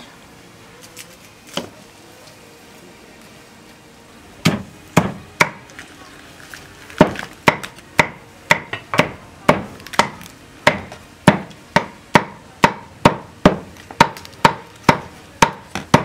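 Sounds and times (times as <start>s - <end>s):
cleaver chopping on wooden board: 4.4s - 5.6s, 7.0s - 16.0s.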